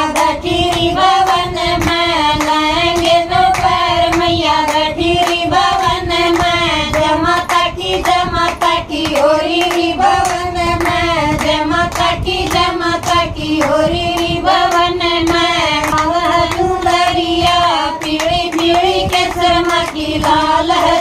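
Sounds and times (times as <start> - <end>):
rhythmic hand claps: 0.0 - 21.0
women singing devotional song: 0.0 - 21.0.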